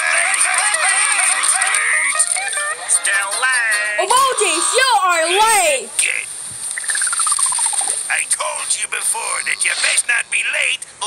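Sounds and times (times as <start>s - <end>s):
descending beeping notes: 6.8s - 8.0s
cartoon hiss: 9.6s - 10.1s.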